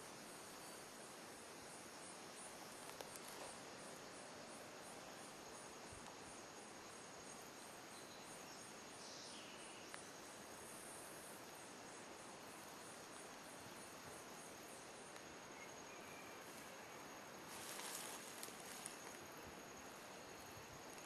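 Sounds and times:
insects chirping: 0:00.0 - 0:21.0
quiet hiss: 0:00.0 - 0:21.0.

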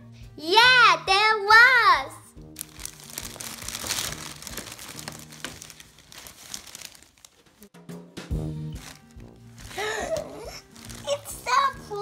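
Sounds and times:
plastic bag and tissue paper rustling: 0:02.6 - 0:07.7, 0:08.8 - 0:12.0.

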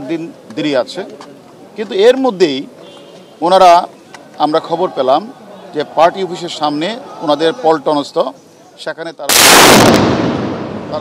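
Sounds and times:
loud explosion bang: 0:09.3 - 0:11.0.

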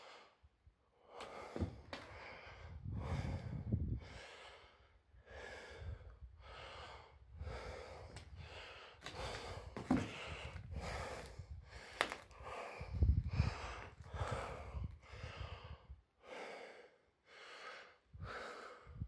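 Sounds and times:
person breathing heavily: 0:01.0 - 0:19.0.

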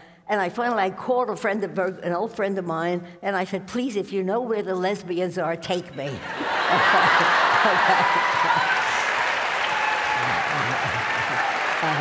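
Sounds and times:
audience laughing: 0:06.2 - 0:09.4, 0:10.1 - 0:12.0
audience applauding: 0:06.5 - 0:12.0.

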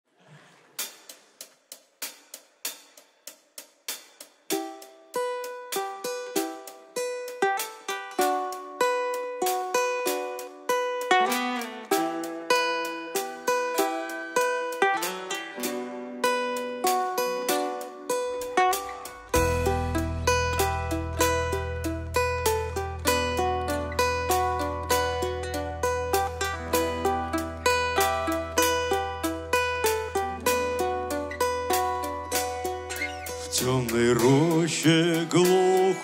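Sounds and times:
acoustic guitars picking: 0:04.6 - 0:36.0.

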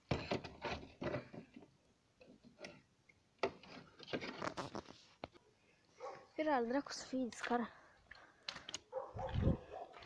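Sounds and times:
wooden poles scraping and knocking: 0:00.0 - 0:05.4.

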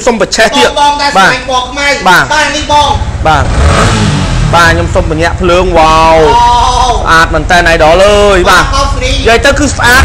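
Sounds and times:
man talking: 0:00.0 - 0:03.6, 0:04.4 - 0:10.0
motorcycle engine running: 0:01.4 - 0:10.0.

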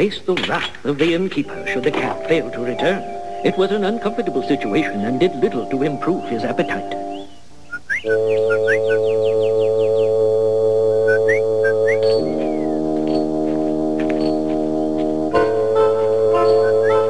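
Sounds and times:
held orchestral chords: 0:01.3 - 0:17.0
rising bird-like chirps: 0:06.0 - 0:10.2, 0:11.0 - 0:12.9, 0:16.4 - 0:17.0.

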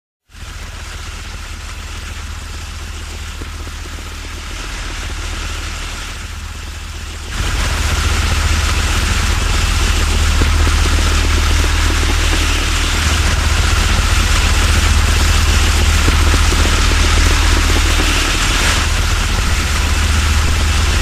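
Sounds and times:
hiss: 0:00.3 - 0:21.0
low engine rumble: 0:00.3 - 0:21.0.

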